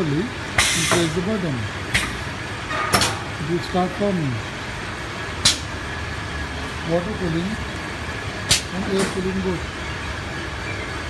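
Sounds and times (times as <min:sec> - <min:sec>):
steady machine noise: 0:00.0 - 0:11.0
machine click-hiss: 0:00.6 - 0:01.1.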